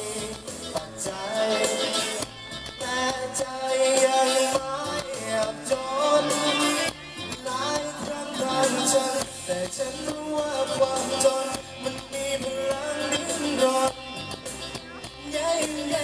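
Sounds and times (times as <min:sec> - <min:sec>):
man singing into microphone: 0:00.0 - 0:16.0
musical accompaniment: 0:00.0 - 0:16.0.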